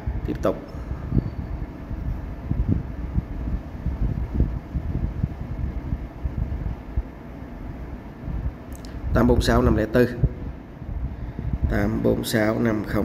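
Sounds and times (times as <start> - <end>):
low rumble of microphone noise: 0.0 - 13.0.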